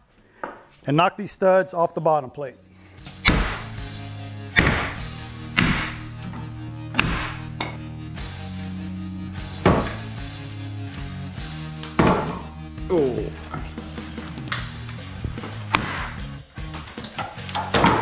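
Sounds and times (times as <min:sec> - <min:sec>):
background music: 0:00.8 - 0:18.0
sledgehammer knocking wooden studs: 0:03.2 - 0:03.8, 0:04.6 - 0:06.1, 0:06.9 - 0:07.7, 0:09.6 - 0:10.2, 0:11.9 - 0:12.5, 0:15.4 - 0:16.2.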